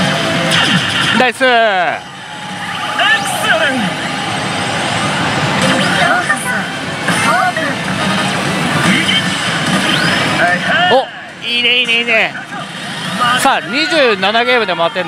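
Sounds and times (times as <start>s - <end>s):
slot machine electronic sound effects: 0.0s - 2.0s, 5.0s - 11.0s
pachinko hall din: 0.0s - 15.0s.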